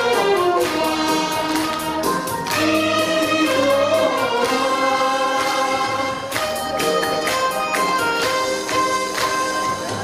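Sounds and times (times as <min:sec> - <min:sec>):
musical accompaniment: 0:00.0 - 0:10.0
saxophones playing long notes: 0:00.0 - 0:10.0
sharp rhythmic beat: 0:00.0 - 0:10.0.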